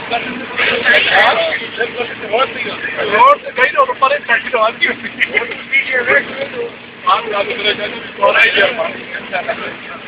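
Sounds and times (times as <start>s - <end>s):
people talking: 0.0s - 10.0s
van running noise: 0.0s - 10.0s.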